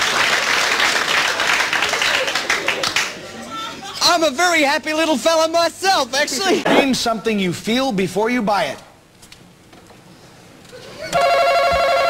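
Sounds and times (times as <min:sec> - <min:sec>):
game show buzzer tone: 0:11.1 - 0:12.0.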